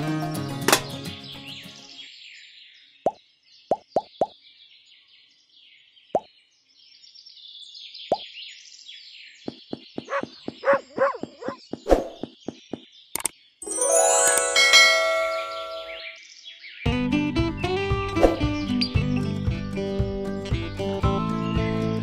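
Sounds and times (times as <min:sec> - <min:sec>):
faint birdsong: 0:00.9 - 0:13.6, 0:14.9 - 0:16.9.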